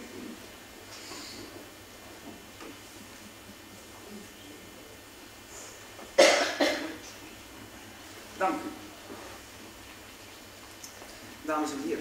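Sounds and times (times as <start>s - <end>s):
person coughing: 6.2s - 7.0s.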